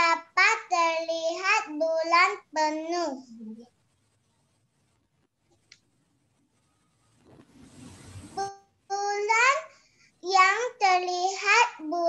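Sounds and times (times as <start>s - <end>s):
high-pitched child's voice: 0.0s - 3.7s, 8.4s - 12.0s
rushing microphone noise: 6.4s - 8.5s.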